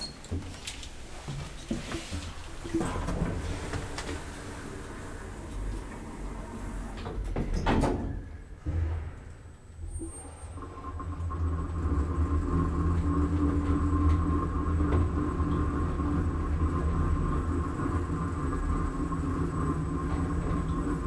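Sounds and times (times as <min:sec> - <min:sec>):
elevator hum and rumble: 0:00.0 - 0:21.0
thin high elevator whine: 0:02.5 - 0:21.0.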